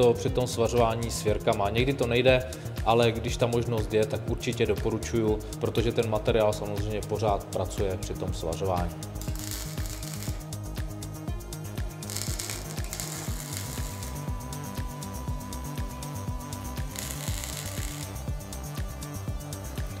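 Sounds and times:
background music with beat: 0.0s - 20.0s
welder crackle: 9.0s - 10.7s, 12.0s - 19.1s.

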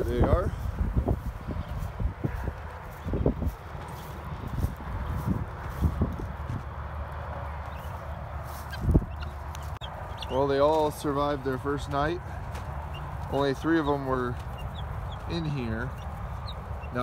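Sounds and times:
guinea fowl calling: 7.7s - 10.4s, 13.8s - 17.0s.

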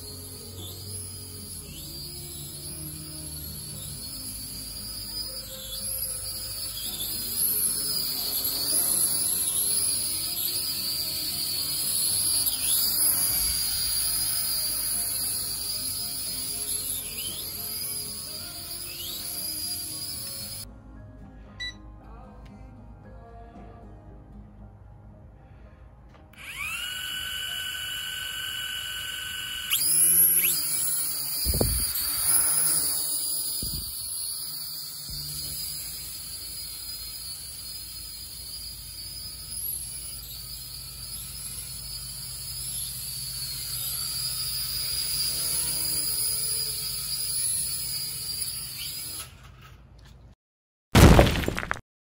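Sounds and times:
quadcopter motors whining: 0.0s - 20.7s, 26.3s - 49.6s.

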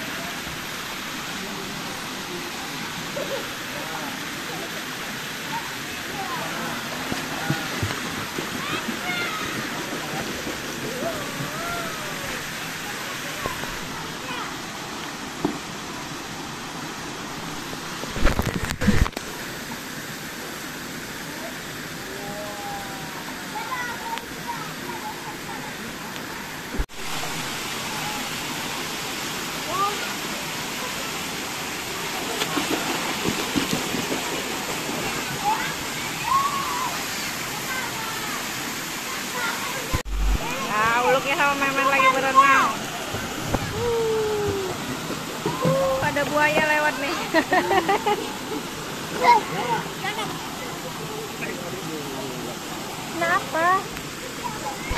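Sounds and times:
water rushing and splashing: 0.0s - 54.9s
children's voices: 8.5s - 10.2s, 10.9s - 14.6s, 23.3s - 26.6s, 34.9s - 42.9s, 49.0s - 51.3s, 53.2s - 54.9s.

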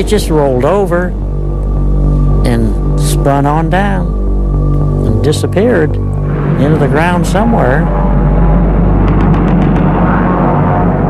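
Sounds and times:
background music low tones: 0.0s - 11.0s.

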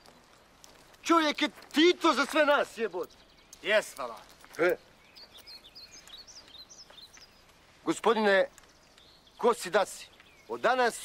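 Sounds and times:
small birds chirping: 0.0s - 11.0s
man speaking: 1.0s - 4.8s, 7.8s - 8.5s, 9.4s - 11.0s.

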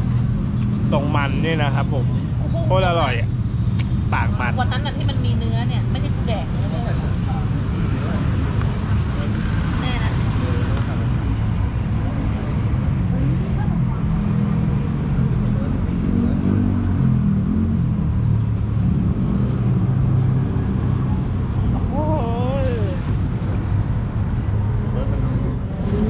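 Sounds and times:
road traffic rumble: 0.0s - 26.0s
faint voices: 21.6s - 23.2s.

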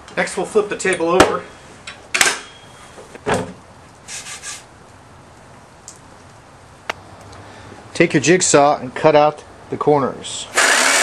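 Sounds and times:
scraping rub: 4.1s - 4.7s.

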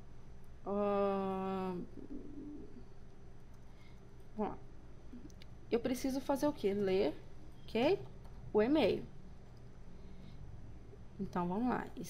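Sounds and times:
woman humming faintly: 0.7s - 2.9s.

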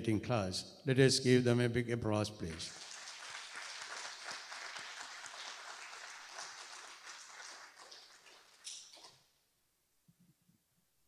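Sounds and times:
audience applauding: 2.5s - 9.1s.

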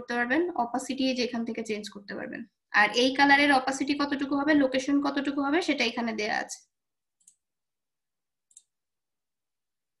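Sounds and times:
faint computer mouse clicks: 8.5s - 8.8s.

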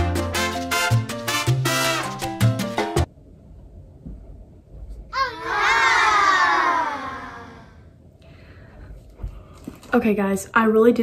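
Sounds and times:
high-pitched wordless cry: 5.1s - 7.8s.

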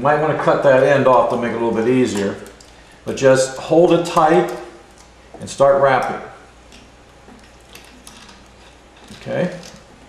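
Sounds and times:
steady low hum: 0.0s - 10.0s
wire wrapping ticks and rustling: 5.9s - 10.0s.

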